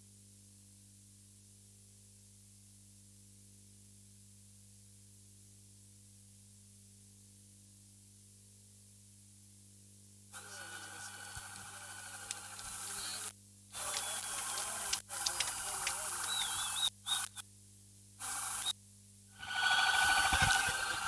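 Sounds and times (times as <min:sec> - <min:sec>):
distant voices: 0:10.4 - 0:17.2
steady hiss: 0:10.4 - 0:17.4, 0:18.2 - 0:18.8, 0:19.4 - 0:21.0.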